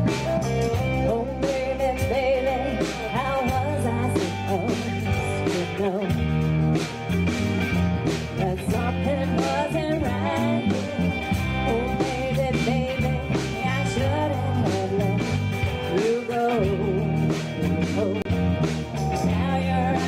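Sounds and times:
woman singing lead: 0.0s - 6.4s, 8.2s - 20.0s
bass guitar: 0.0s - 20.0s
drum kit: 0.0s - 20.0s
electric guitars: 0.0s - 20.0s.

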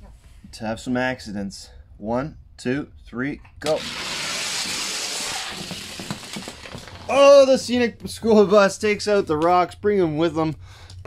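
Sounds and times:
toy cars rolling on plastic track: 3.8s - 7.1s.

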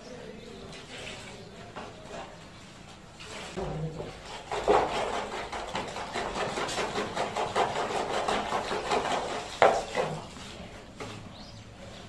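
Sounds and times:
mortar scraping into plastic pan: 3.2s - 11.3s.

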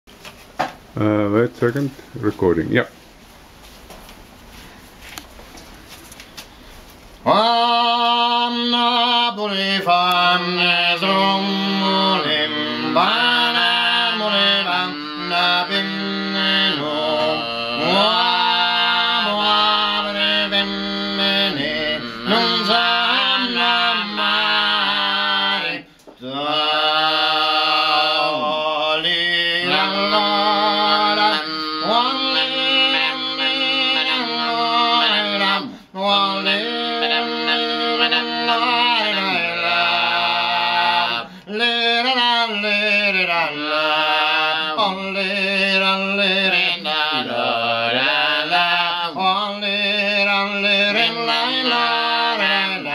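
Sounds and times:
two men singing unaccompanied: 7.2s - 52.9s.

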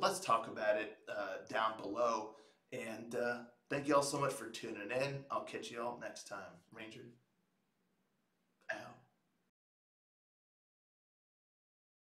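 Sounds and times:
man saying a word: 0.0s - 2.2s, 2.8s - 7.0s, 8.7s - 9.0s.

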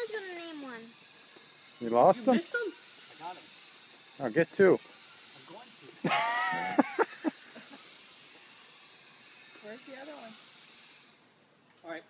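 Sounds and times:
outdoor background noise: 0.0s - 12.0s
person laughing: 6.0s - 7.8s.

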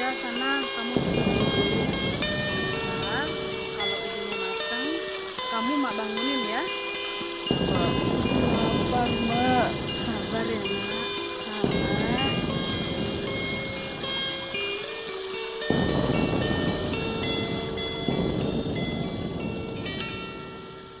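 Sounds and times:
electric guitar chords ringing: 0.0s - 21.0s.

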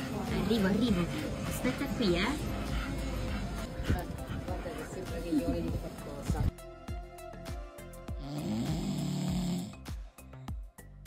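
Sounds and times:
background music with beat: 0.0s - 11.0s
dog snoring: 8.2s - 9.9s.

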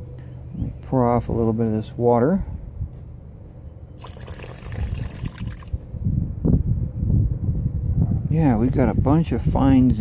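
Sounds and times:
water splashing into a bucket: 4.0s - 5.8s.

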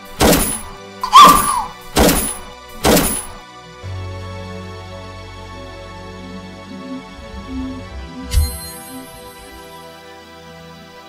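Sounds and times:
background music: 0.0s - 11.0s
heavy thuds of blows: 0.1s - 3.4s
short cry: 1.0s - 1.8s.

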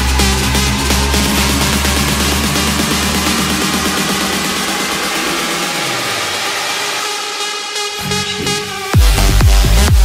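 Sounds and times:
synth noise wash: 0.0s - 9.0s.

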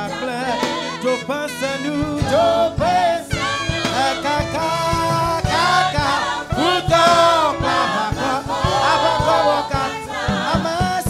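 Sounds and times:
gospel choir singing: 0.0s - 11.0s
light backing music: 0.0s - 11.0s.

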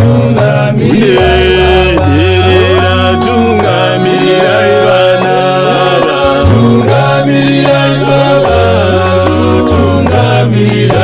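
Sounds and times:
low bass notes held: 0.0s - 11.0s
male choir singing in harmony: 0.0s - 11.0s.

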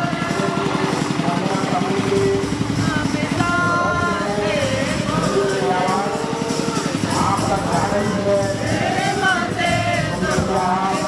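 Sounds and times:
generator engine running: 0.0s - 11.0s
people's voices: 0.0s - 11.0s.

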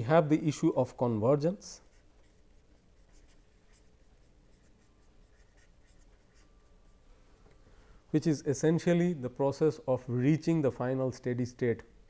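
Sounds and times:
low steady hum: 0.0s - 12.0s
stylus scratching on pen tablet: 1.7s - 7.0s.

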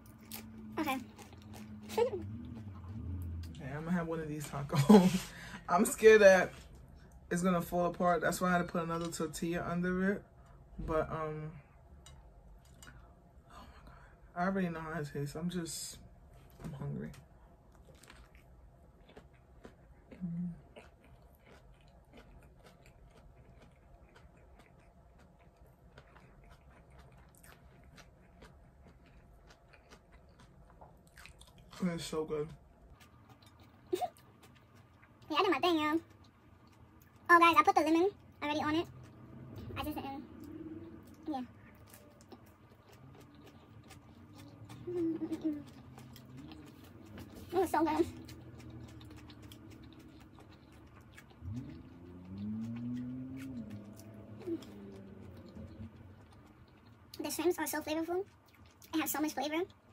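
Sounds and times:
faint chewing: 0.0s - 7.7s, 16.3s - 59.9s
woman humming mmm: 20.2s - 20.6s, 44.8s - 45.7s.

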